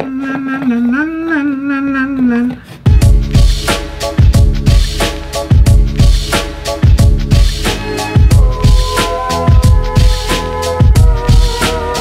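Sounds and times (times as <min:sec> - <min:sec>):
person singing la la: 0:00.0 - 0:03.2
background music with a beat: 0:02.8 - 0:12.0.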